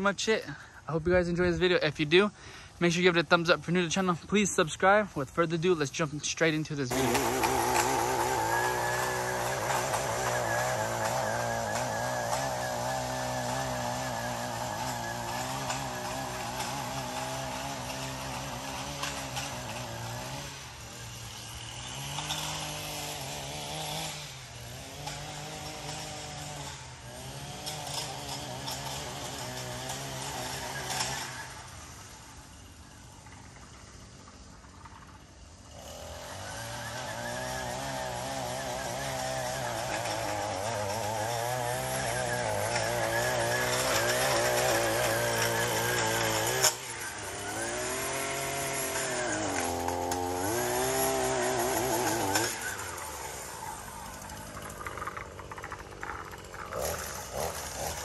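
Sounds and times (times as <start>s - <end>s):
small two-stroke engine revving: 0.0s - 58.0s.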